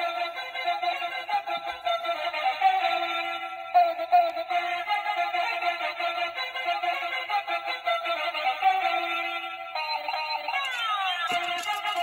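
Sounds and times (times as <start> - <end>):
toy electronic tune: 9.8 - 12.0.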